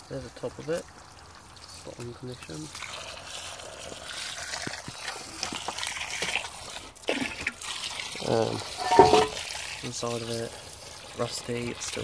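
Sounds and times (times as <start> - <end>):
water running into a cistern: 0.0 - 12.0.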